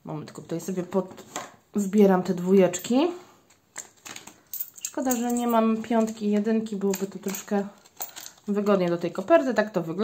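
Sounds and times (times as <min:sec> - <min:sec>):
coins clicking together: 0:04.5 - 0:06.2.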